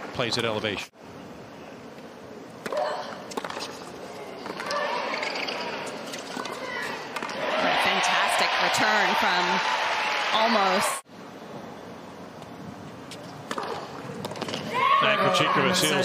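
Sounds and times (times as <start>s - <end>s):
crowd cheering and shouting: 6.5s - 11.0s, 14.7s - 16.0s.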